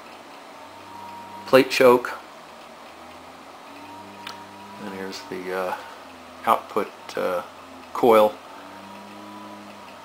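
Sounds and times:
faint electrical hum and hiss: 0.0 - 10.0
thin high steady tone: 0.8 - 10.0.

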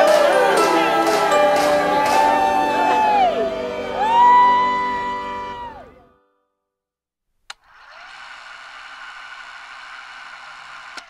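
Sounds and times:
small electric motor whirring: 7.5 - 11.0.

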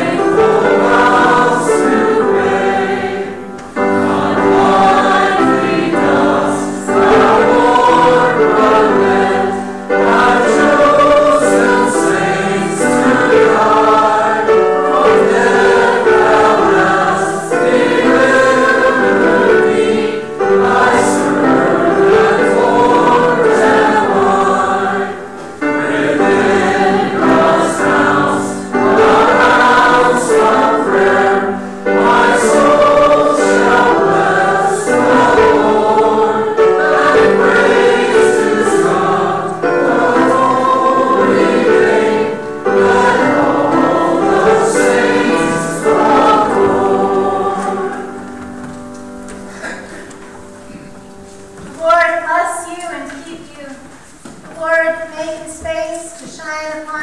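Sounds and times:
choir and congregation singing hymn: 0.0 - 55.7.

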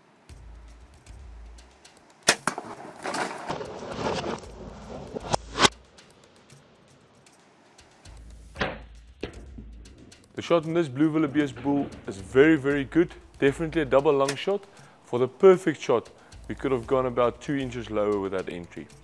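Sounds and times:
sharp crack of bow shot: 2.2 - 6.2
sharp clicks and knocks: 7.2 - 10.4, 14.0 - 14.9.

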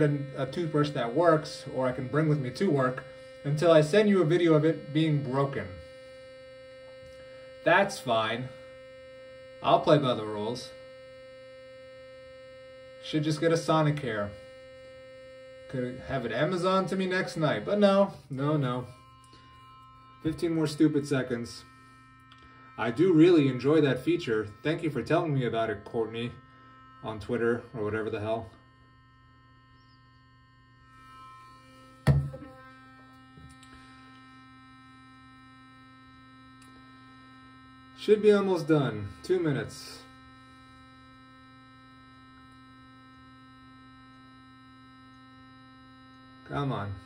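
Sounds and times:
electric toothbrush buzzing: 0.0 - 47.0
toothbrush knocking on stone: 32.1 - 32.4.

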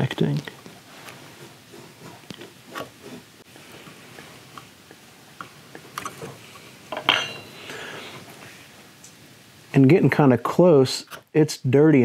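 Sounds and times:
bright metallic clink: 7.0 - 7.5.

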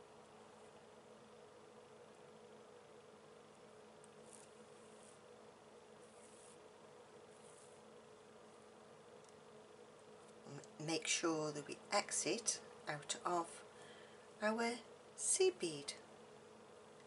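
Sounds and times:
faint soft rustles: 4.2 - 5.4, 6.0 - 8.0.

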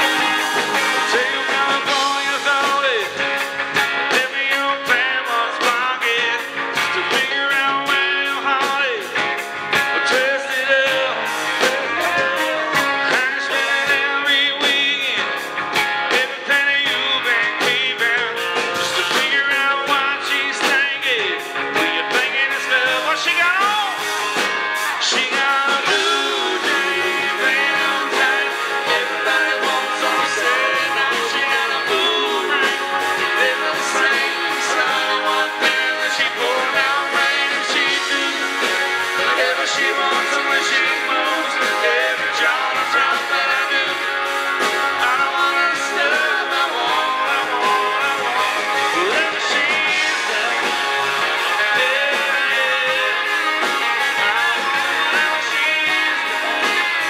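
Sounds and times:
live country-rock band: 0.0 - 57.0
male lead vocal: 0.0 - 57.0.

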